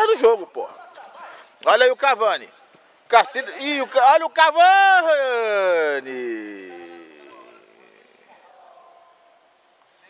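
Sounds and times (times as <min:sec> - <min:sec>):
faint distant voices: 0:00.0 - 0:10.0
man shouting: 0:04.2 - 0:08.1.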